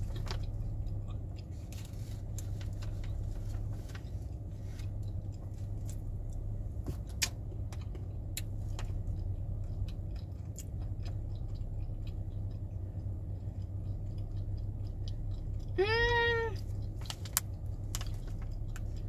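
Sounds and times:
cashews being chewed: 0.0 - 19.0
low hum: 0.0 - 19.0.

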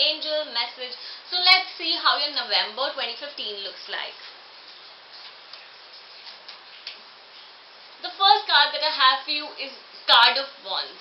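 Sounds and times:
low steady hiss: 0.0 - 11.0.

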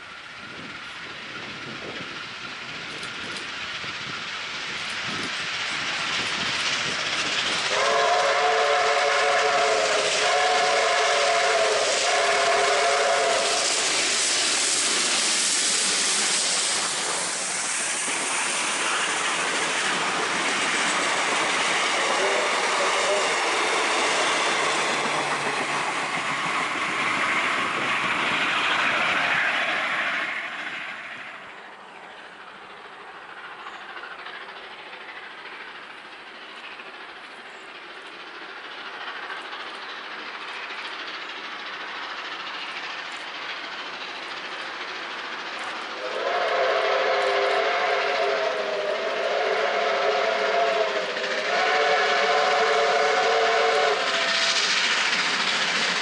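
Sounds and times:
train carriages clattering on rails: 0.5 - 9.0, 12.0 - 30.7, 31.5 - 48.4, 50.3 - 56.0
steam locomotive chime whistle: 7.7 - 13.9, 21.9 - 24.8, 46.0 - 54.7.

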